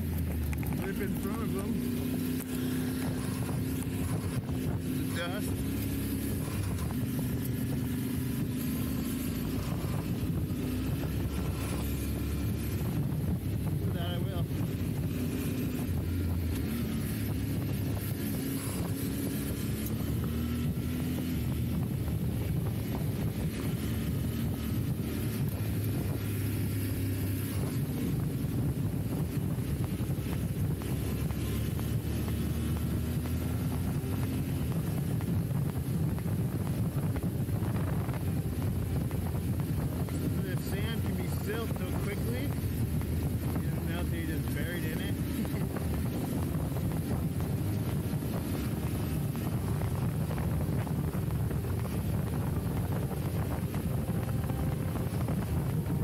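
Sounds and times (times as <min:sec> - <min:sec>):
motorcycle engine running: 0:00.0 - 0:56.0
wind on microphone: 0:00.0 - 0:56.0.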